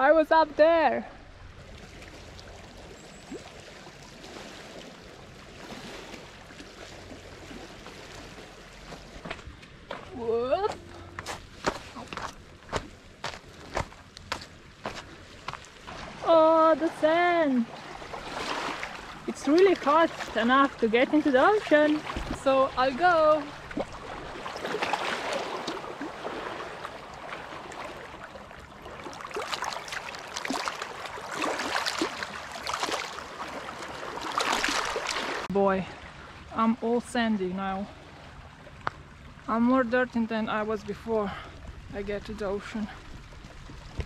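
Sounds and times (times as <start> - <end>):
seawater lapping over rocks: 0.1 - 44.0
footsteps on pebbles: 8.9 - 15.8.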